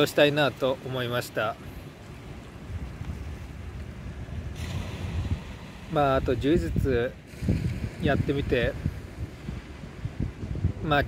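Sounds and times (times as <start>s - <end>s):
waves washing onto pebble beach: 0.0s - 10.9s
wind buffeting microphone: 1.6s - 11.0s.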